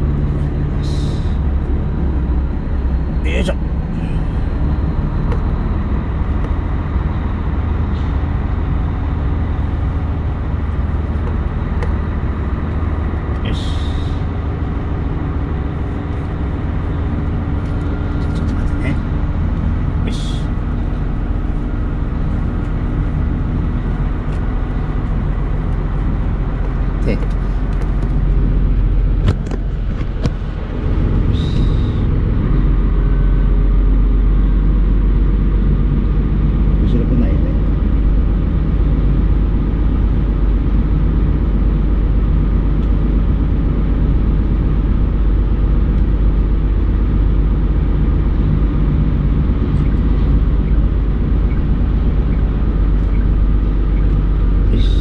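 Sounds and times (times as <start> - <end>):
truck diesel engine running: 0.0 - 55.0.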